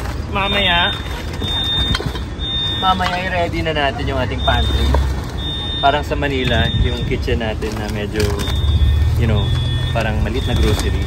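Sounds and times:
low rumble of street traffic: 0.0 - 11.0.

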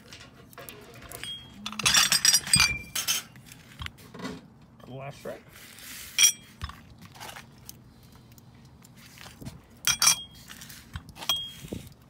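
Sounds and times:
glass ashtrays clinking: 1.1 - 3.4, 9.9 - 10.4.

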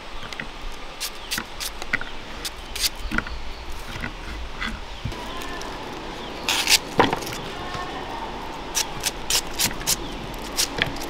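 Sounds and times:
knife cutting onion: 8.8 - 11.0.

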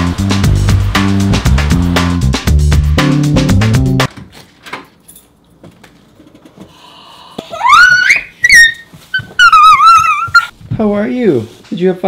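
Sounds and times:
toddler squealing: 7.5 - 10.5.

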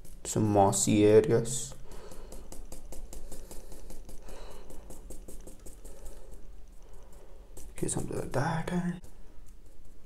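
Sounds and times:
paintbrush dabbing on paper: 0.0 - 10.0.

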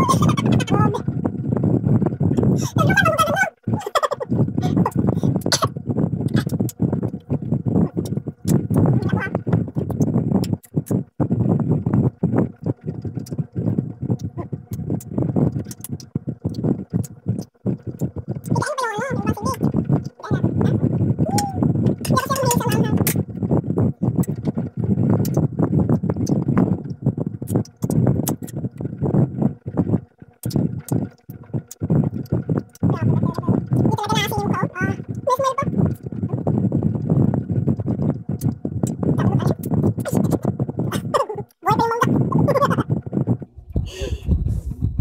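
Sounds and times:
wavering vocal sounds: 0.0 - 1.2, 2.0 - 44.7.

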